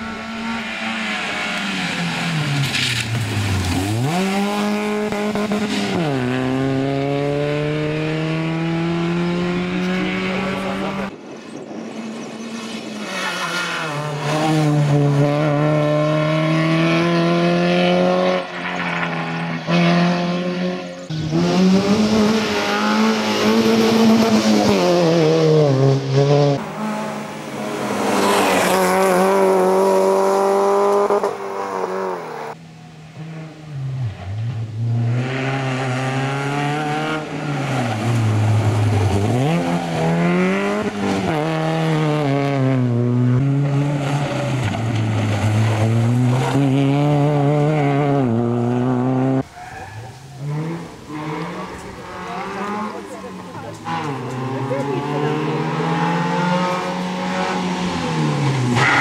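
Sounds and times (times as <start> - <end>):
rally car engine revving: 0.0 - 11.1, 11.9 - 49.5, 50.1 - 59.0.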